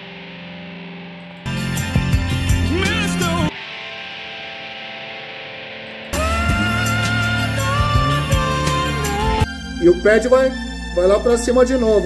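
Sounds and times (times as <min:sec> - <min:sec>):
distorted electric guitar chord: 0:00.0 - 0:11.3.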